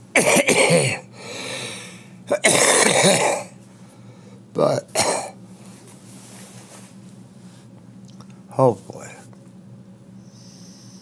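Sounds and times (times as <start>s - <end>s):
man coughing: 0.1s - 1.1s, 2.3s - 3.6s, 4.9s - 5.4s.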